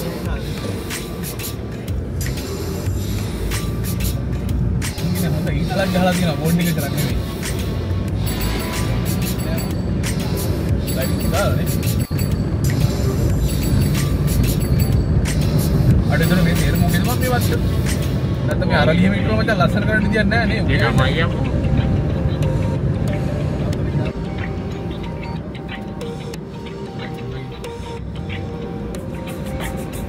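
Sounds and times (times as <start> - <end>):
background music: 0.0 - 30.0
car rumble from inside cabin: 7.9 - 25.0.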